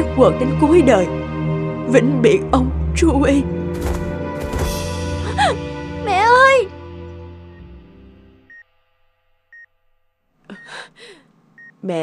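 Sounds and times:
breathy gasp: 10.7s - 11.3s
heart monitor beeping: 11.6s - 11.8s.

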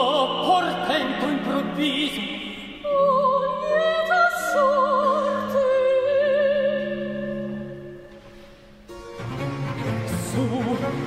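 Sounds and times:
baroque string ensemble with lute: 8.9s - 11.0s
person singing: 10.0s - 11.0s.

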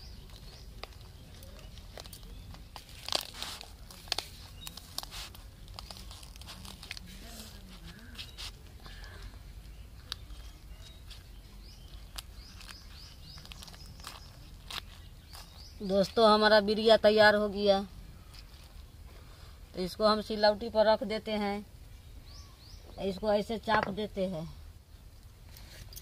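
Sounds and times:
leaf rustling and crinkling: 0.0s - 17.4s, 18.2s - 19.4s
small crackles and taps: 0.1s - 7.1s, 7.8s - 15.5s.

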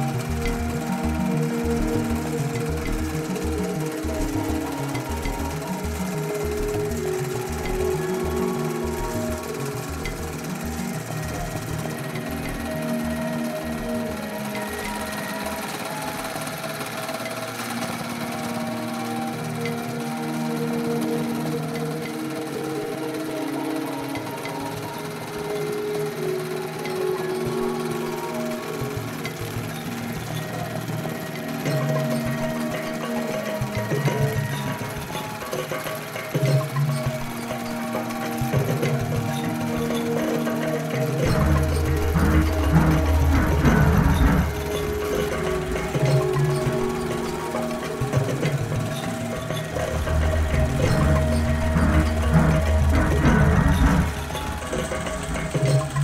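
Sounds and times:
embroidery machine stitching: 0.0s - 56.0s
instrumental music: 0.0s - 56.0s.

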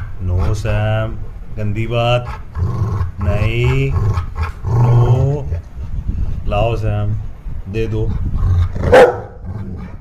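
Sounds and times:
dog barking: 8.9s - 9.4s.

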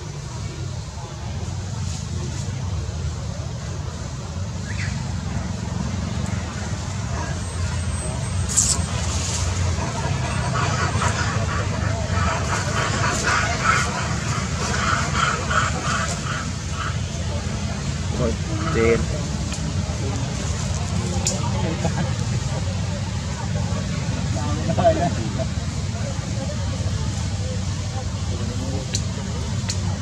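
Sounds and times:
people talking: 0.0s - 30.0s.

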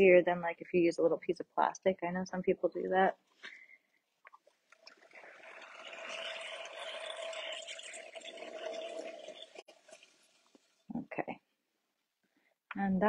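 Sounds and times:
potter's wheel humming: 5.1s - 10.6s.

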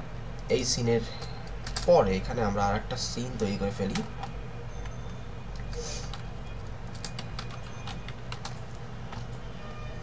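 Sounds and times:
steady low hum: 0.0s - 10.0s
computer keyboard keys clicking: 1.2s - 2.0s, 3.9s - 9.4s.

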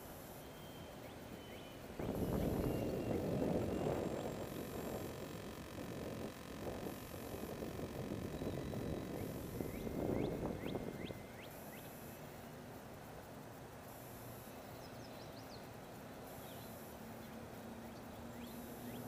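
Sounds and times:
faint bird chirps: 0.3s - 12.5s, 14.4s - 19.0s
wind buffeting microphone: 2.0s - 11.4s.

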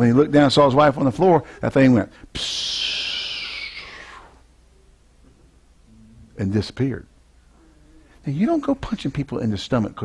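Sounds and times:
man making hissing sound: 2.3s - 4.4s.

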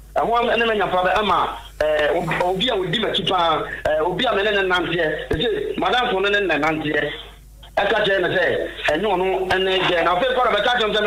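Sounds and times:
man speaking over phone line: 0.2s - 11.0s.

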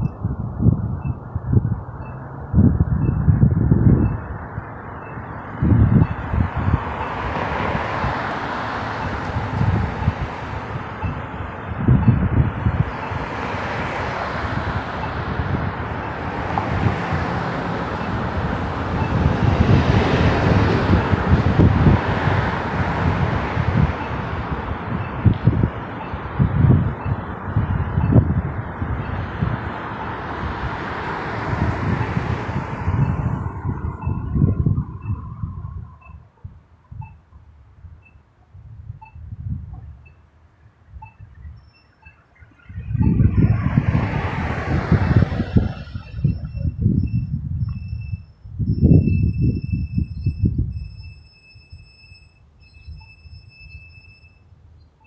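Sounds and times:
wind buffeting microphone: 0.0s - 54.2s
vehicles passing: 0.0s - 55.0s.

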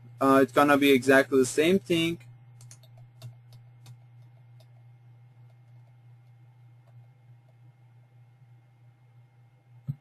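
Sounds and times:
steady low hum: 0.0s - 10.0s
mouse or keyboard clicks: 2.6s - 4.0s.

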